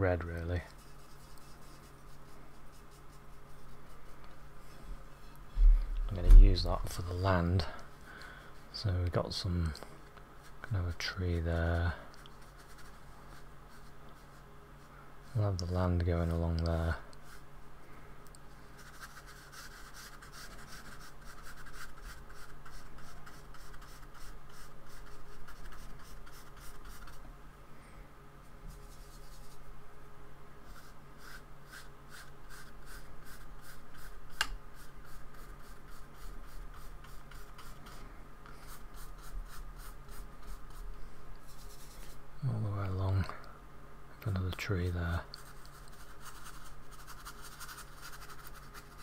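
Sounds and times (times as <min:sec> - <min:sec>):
steady low hum: 0:00.0 - 0:49.0
paintbrush scratching on paper: 0:00.7 - 0:04.8, 0:12.2 - 0:16.4, 0:17.2 - 0:17.4, 0:18.7 - 0:27.2, 0:28.7 - 0:29.7, 0:30.6 - 0:40.8, 0:41.4 - 0:42.2, 0:45.3 - 0:49.0.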